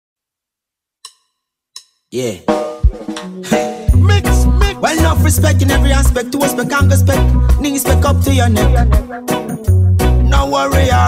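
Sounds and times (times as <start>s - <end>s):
reggae band playing: 2.4s - 11.0s.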